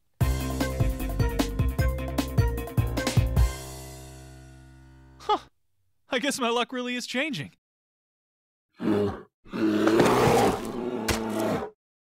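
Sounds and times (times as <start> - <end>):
man sighing: 5.2 - 5.6
cartoon take-off roar: 8.8 - 11.8.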